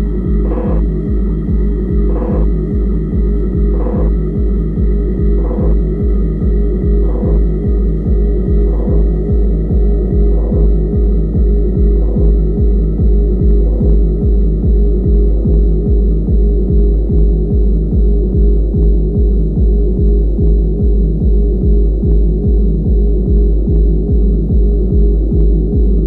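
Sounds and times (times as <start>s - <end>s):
sustained droning tone: 0.0s - 26.0s
techno kick drum: 0.0s - 26.0s.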